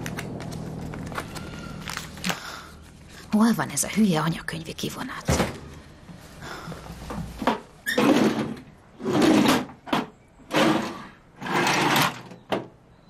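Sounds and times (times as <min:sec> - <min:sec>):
metal drawers sliding: 0:07.9 - 0:12.4.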